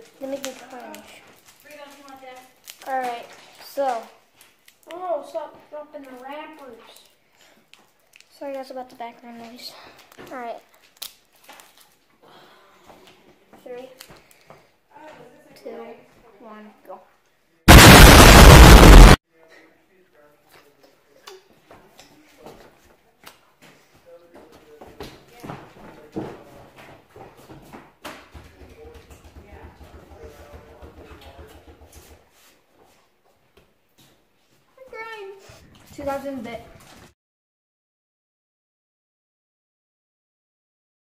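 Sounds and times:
loud burst of distorted noise: 0:17.7 - 0:19.2.

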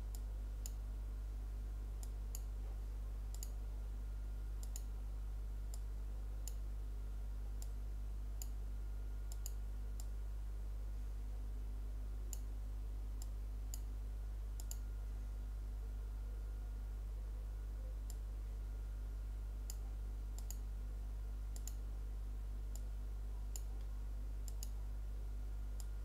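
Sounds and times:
steady low hum: 0:00.0 - 0:26.0
computer mouse clicking: 0:03.3 - 0:03.6, 0:04.6 - 0:04.9, 0:09.3 - 0:10.1, 0:14.6 - 0:14.8, 0:20.4 - 0:20.6, 0:21.6 - 0:21.8, 0:24.4 - 0:24.8.

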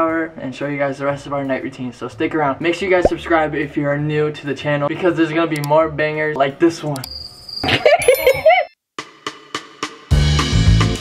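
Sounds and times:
person laughing: 0:07.7 - 0:08.7.

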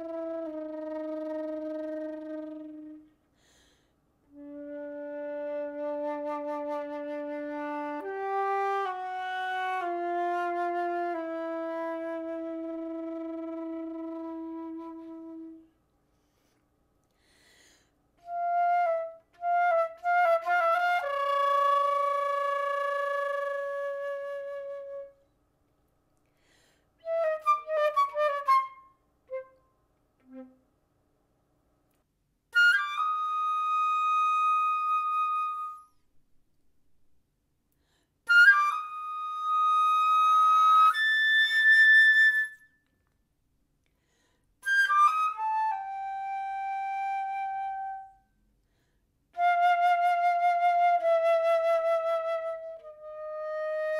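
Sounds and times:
solo flute playing: 0:00.0 - 0:03.2, 0:04.3 - 0:15.8, 0:18.2 - 0:25.4, 0:27.0 - 0:30.7, 0:32.5 - 0:36.1, 0:38.2 - 0:42.9, 0:44.6 - 0:48.4, 0:49.4 - 0:53.9.

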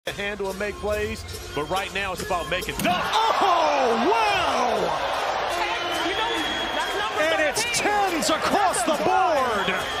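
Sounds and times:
crowd cheering and yelling: 0:02.8 - 0:10.0.

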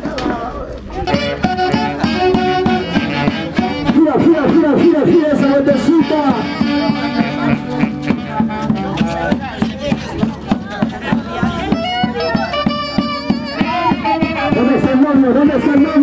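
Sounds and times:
saxophones playing folk dance tune: 0:00.9 - 0:09.7, 0:11.3 - 0:16.0.

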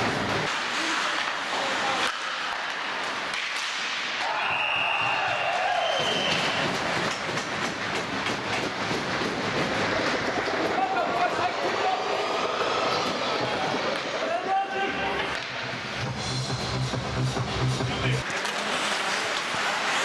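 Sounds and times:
skates scraping on ice: 0:00.0 - 0:20.0
sticks and puck clacking: 0:00.0 - 0:20.0
players shouting: 0:04.1 - 0:07.0.

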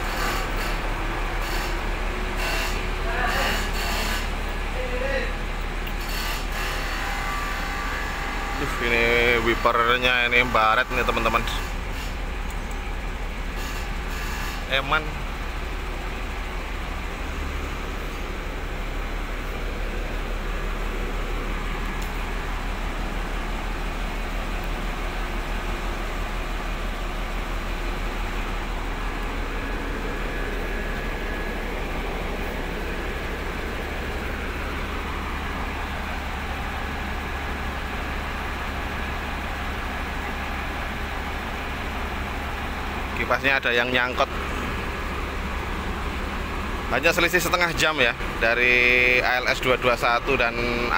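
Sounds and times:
diesel bus engine idling: 0:00.0 - 0:50.9.

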